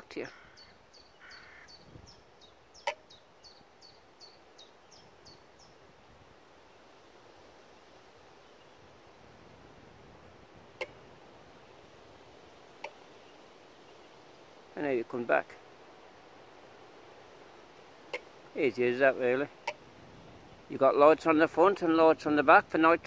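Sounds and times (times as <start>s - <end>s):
faint outdoor background: 0.0s - 23.0s
songbird singing: 0.0s - 23.0s.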